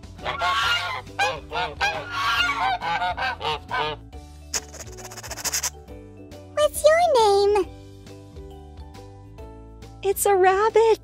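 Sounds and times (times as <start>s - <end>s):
soft background music: 0.0s - 11.0s
geese honking: 0.2s - 4.0s.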